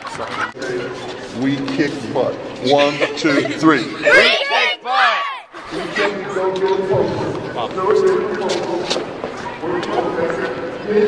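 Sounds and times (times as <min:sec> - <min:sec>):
indistinct chatter: 0:00.0 - 0:11.0.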